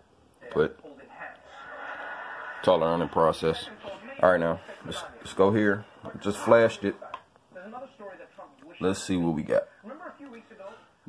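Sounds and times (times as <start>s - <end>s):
man speaking: 2.6s - 7.0s, 8.8s - 9.8s.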